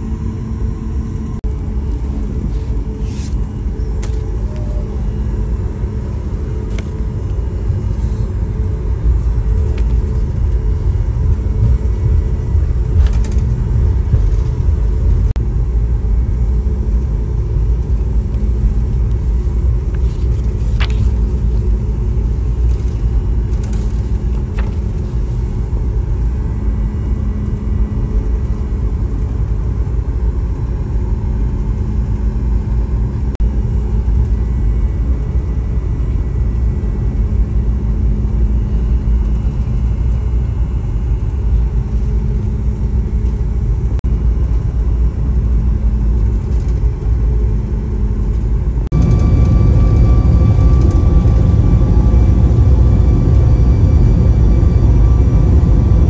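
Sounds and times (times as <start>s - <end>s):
airliner cabin rumble: 0.0s - 56.0s
constant hum: 0.0s - 56.0s
paper rustling: 19.2s - 25.6s.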